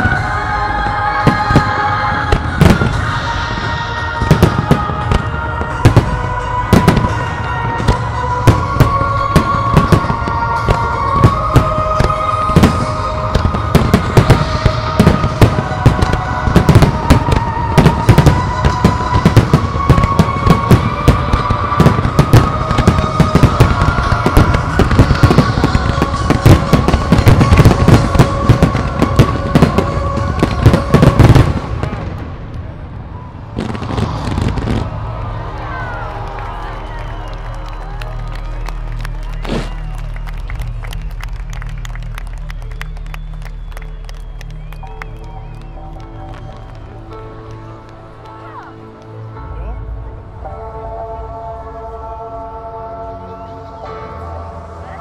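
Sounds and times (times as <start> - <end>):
fireworks bursts and bangs: 0.0 - 32.8, 33.5 - 48.4.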